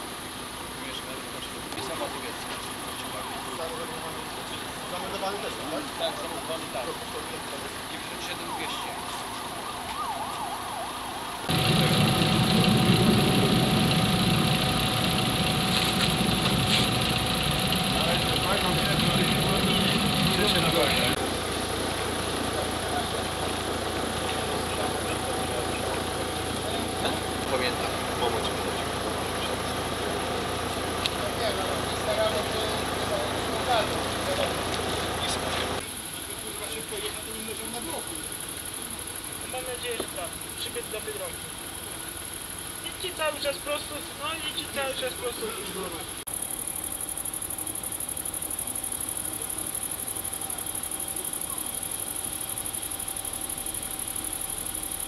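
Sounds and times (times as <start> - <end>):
engine running steadily: 0.0 - 55.0
indistinct voices: 11.5 - 41.6.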